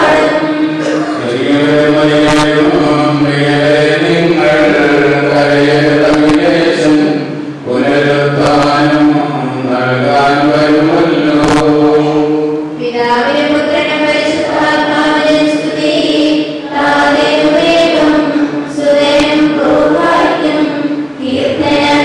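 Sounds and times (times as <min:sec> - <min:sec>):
group singing slow hymn: 0:00.0 - 0:22.0.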